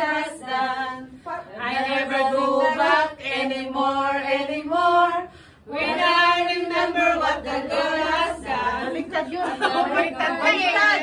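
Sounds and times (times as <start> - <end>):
women singing without instruments: 0.0 - 11.0.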